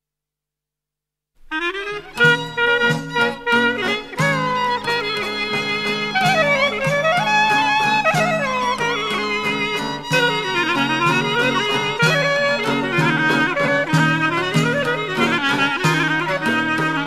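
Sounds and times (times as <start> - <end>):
clarinet folk melody: 1.4 - 17.0
low accompaniment: 1.6 - 17.0.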